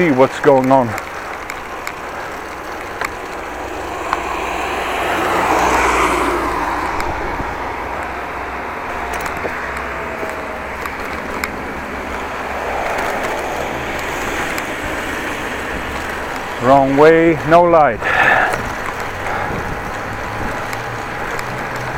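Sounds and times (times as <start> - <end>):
bicycle rolling and wind noise: 0.0 - 21.9
motor vehicle passing: 0.0 - 21.9.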